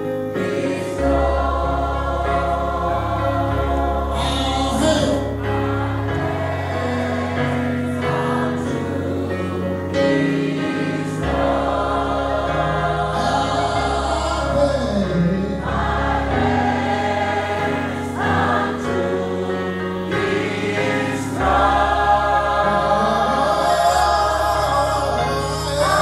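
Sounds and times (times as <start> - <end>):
gospel choir singing chords: 0.0 - 26.0.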